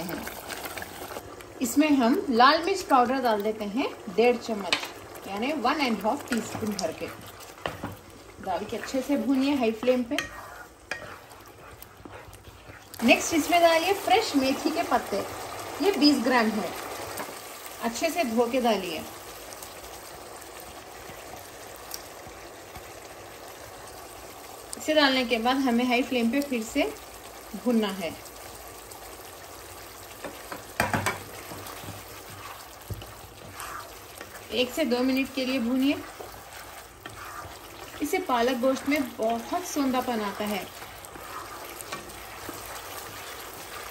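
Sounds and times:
meat sizzling in a pan: 0:00.0 - 0:43.9
spatula scraping a pan: 0:08.7 - 0:13.2, 0:30.8 - 0:43.9.

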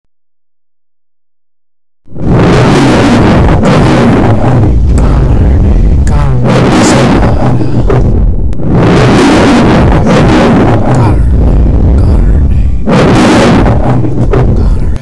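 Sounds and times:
lion roar: 0:02.2 - 0:15.0.

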